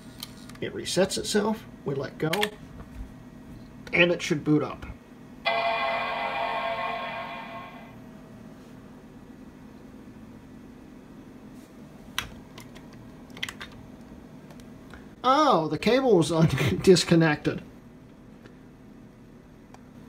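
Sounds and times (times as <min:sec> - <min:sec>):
computer startup chime: 0:05.5 - 0:08.1.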